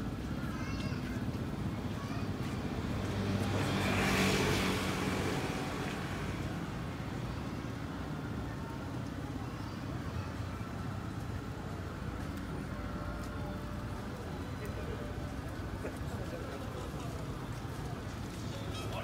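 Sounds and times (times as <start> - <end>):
street traffic noise: 0.0 - 19.0
vehicle passing by: 2.5 - 7.2.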